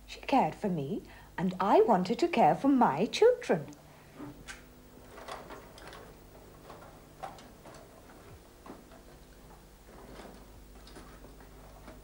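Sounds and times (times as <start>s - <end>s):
steady low hum: 0.0s - 12.0s
small ticks and knocks: 5.1s - 12.0s.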